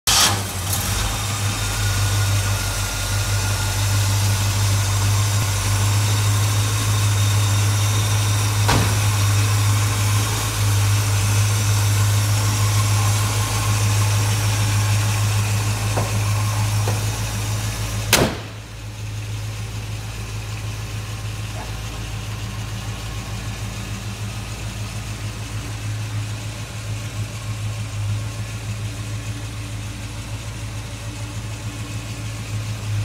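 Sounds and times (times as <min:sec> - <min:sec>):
loud engine burst: 0:00.1 - 0:02.5
car engine idling: 0:00.1 - 0:33.0.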